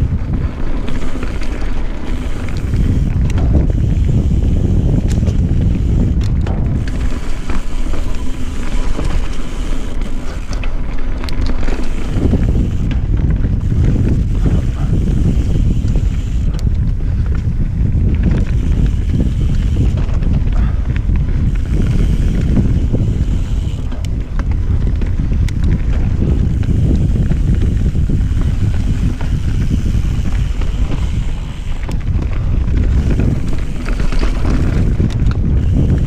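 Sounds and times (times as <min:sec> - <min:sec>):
tyres rolling over dirt: 0:00.0 - 0:16.6, 0:18.5 - 0:36.0
bike clicks and rattles: 0:00.0 - 0:36.0
wind buffeting microphone: 0:00.0 - 0:36.0.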